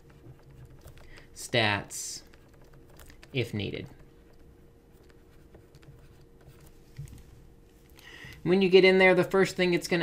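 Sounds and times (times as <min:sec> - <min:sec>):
stylus scratching on drawing tablet: 0:00.0 - 0:06.9
background hum: 0:00.0 - 0:10.0.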